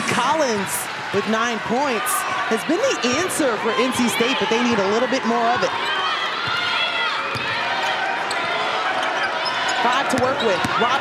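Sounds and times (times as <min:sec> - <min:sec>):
arena crowd murmur: 0:00.0 - 0:11.0
sneakers squeaking on floor: 0:08.2 - 0:11.0.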